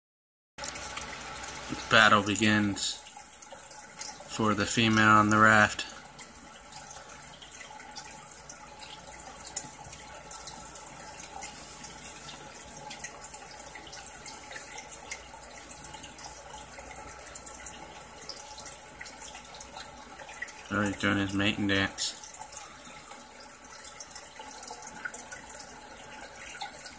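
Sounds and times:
water drips and splashes: 0:00.6 - 0:26.9
water trickling in a tank: 0:00.6 - 0:26.9.

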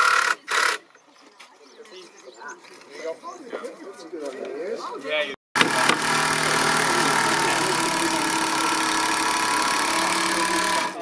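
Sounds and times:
motor running loudly: 0:05.6 - 0:11.0.

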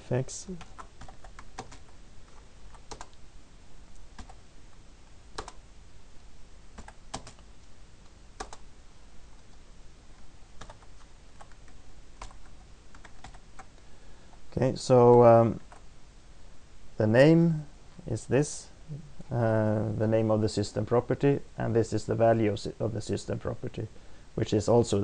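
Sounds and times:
computer keyboard typing: 0:00.6 - 0:03.2, 0:04.1 - 0:04.4, 0:05.4 - 0:05.6, 0:06.8 - 0:07.4, 0:08.4 - 0:08.7, 0:10.6 - 0:13.7.

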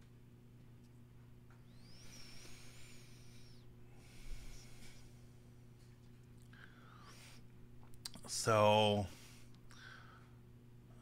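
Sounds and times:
low electrical hum: 0:00.0 - 0:11.0
breath hiss with high whistle: 0:01.6 - 0:05.1.

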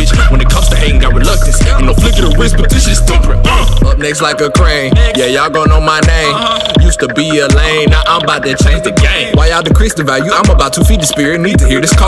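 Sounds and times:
rapping over a beat: 0:00.0 - 0:12.0.

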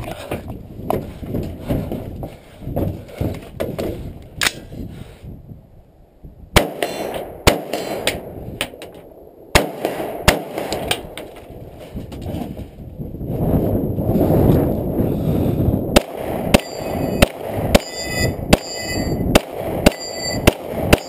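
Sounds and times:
loud gunshots: 0:06.6 - 0:08.3, 0:09.5 - 0:11.1, 0:16.0 - 0:21.0.

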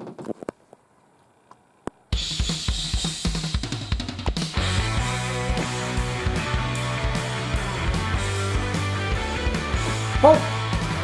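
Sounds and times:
drum kit: 0:02.1 - 0:11.0
hard rock song: 0:02.2 - 0:11.0
sustained bass and guitar notes: 0:04.5 - 0:11.0.

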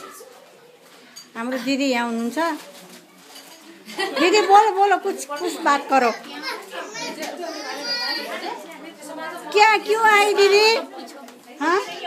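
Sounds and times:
children's voices: 0:00.0 - 0:01.0, 0:05.5 - 0:12.0
chatter of voices: 0:00.0 - 0:12.0.

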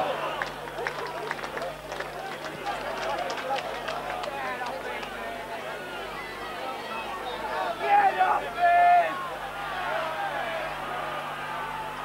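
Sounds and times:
crowd calling and shouting: 0:00.0 - 0:12.0.

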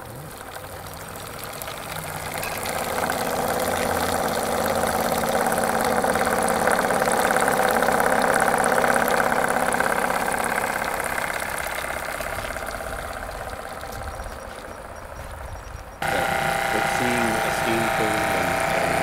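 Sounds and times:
steam engine exhaust puffs: 0:00.0 - 0:19.0.

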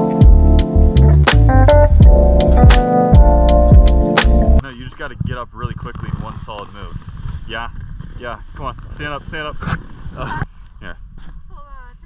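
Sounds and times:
wind rumble on microphone: 0:04.6 - 0:12.0.

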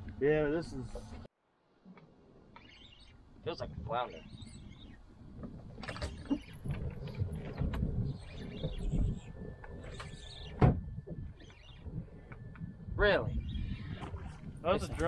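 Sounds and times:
wind and water against boat: 0:00.0 - 0:15.0
faint high whine: 0:05.9 - 0:15.0.

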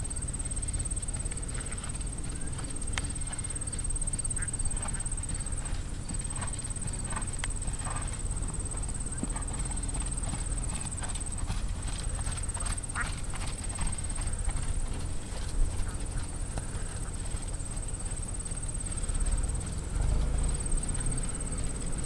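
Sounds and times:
hoofbeats on sand: 0:00.0 - 0:22.0
steady low rumble: 0:00.0 - 0:22.0.

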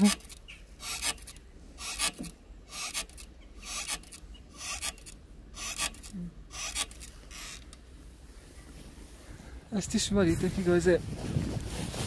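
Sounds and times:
cross-trainer rasping scrape: 0:00.0 - 0:07.7.

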